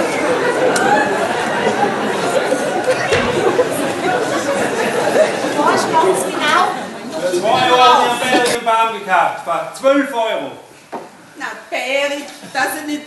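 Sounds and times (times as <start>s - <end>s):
overlapping voices talking: 0.0s - 10.5s.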